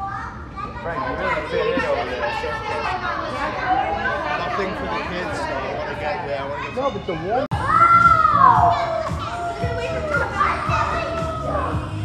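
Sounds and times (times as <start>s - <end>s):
children calling and chattering: 0.0s - 12.0s
background music: 7.5s - 12.0s.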